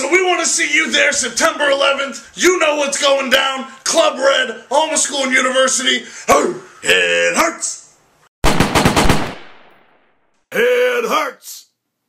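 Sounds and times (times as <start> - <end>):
machine-gun fire with echo: 8.4 - 10.2.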